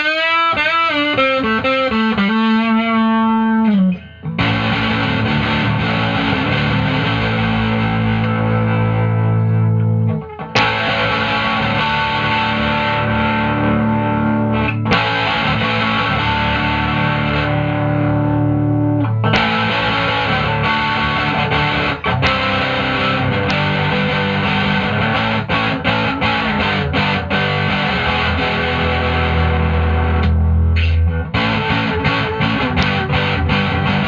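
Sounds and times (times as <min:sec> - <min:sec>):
distorted electric guitar chords: 0:00.0 - 0:34.0.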